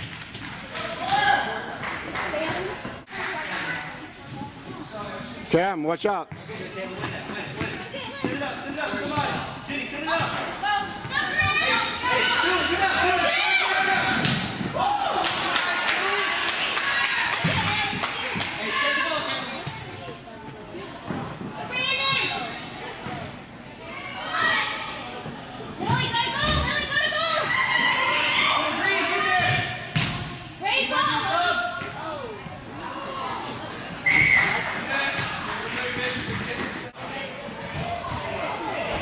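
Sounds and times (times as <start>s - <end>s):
voices and shouts echoing: 0.7s - 39.0s.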